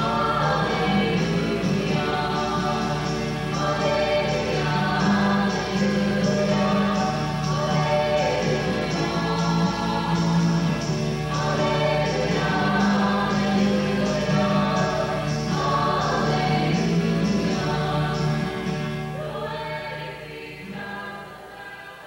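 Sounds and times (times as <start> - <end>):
choir singing sacred music: 0.0 - 22.0.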